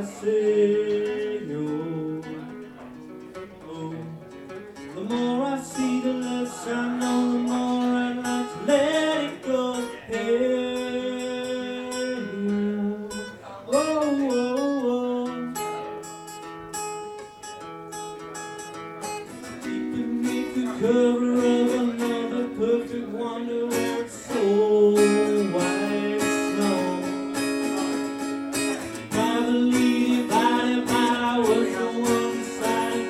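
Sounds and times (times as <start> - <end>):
strummed acoustic guitar: 0.0 - 33.0
man singing long notes: 4.9 - 15.7, 19.7 - 27.4, 28.8 - 33.0.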